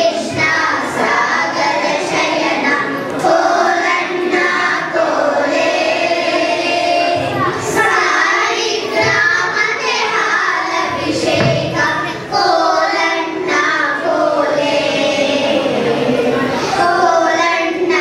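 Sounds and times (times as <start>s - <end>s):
children singing in chorus: 0.0s - 18.0s.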